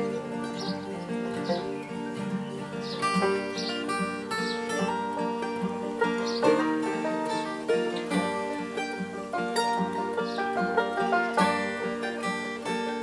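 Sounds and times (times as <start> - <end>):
bluegrass band playing: 0.0 - 13.0.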